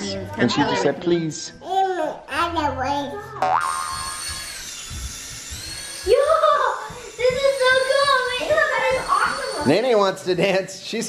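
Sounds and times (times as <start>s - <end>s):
springy boing sound effect: 3.4s - 4.0s
toy propeller motor whine: 3.6s - 10.3s.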